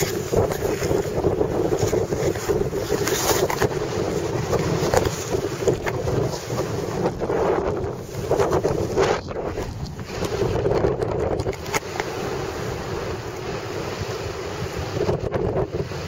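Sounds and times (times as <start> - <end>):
wind rushing over microphone: 0.0 - 16.0.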